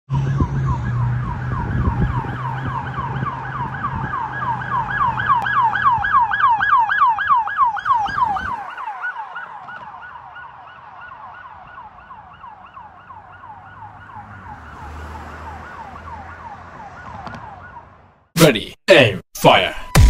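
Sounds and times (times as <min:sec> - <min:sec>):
emergency siren yelping: 0:00.1 - 0:18.2
road rumble: 0:00.1 - 0:18.4.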